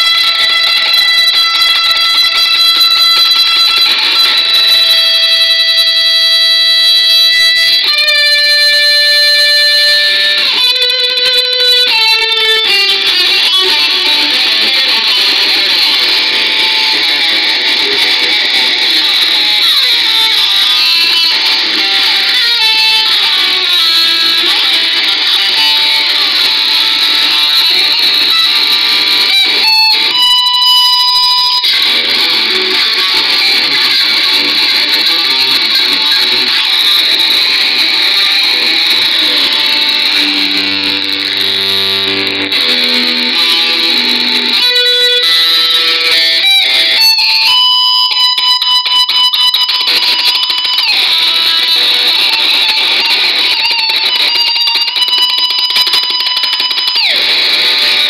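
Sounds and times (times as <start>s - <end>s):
electric guitar lead line: 0.0s - 58.0s.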